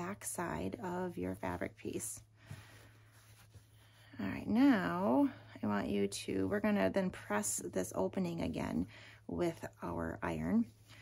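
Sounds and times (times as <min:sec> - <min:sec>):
fabric rustling: 0:00.0 - 0:05.0.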